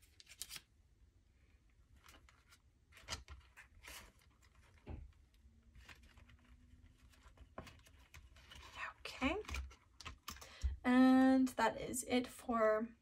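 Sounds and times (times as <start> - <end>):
woman's voice: 8.8 - 9.5, 10.8 - 13.0.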